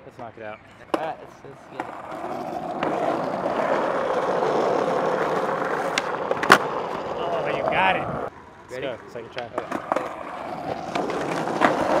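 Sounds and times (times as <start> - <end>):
skateboard clack: 0.8 - 12.0
skateboard wheels rolling on asphalt: 0.8 - 12.0.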